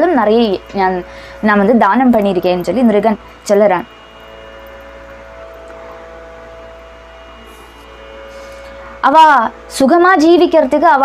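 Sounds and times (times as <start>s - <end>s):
droning held tones: 0.0s - 11.0s
low hum: 0.0s - 11.0s.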